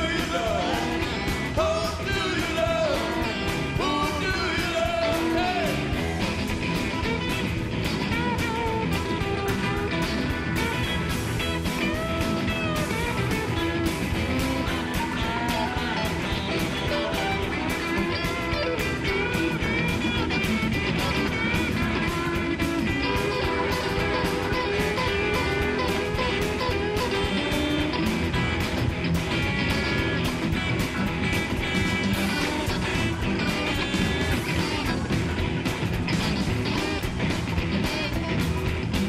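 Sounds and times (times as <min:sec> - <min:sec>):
electric guitars: 0:00.0 - 0:39.0
steady drum beat: 0:00.0 - 0:39.0.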